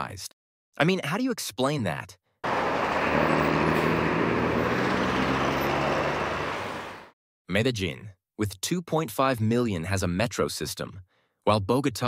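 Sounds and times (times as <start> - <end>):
city street traffic: 2.4 - 7.2.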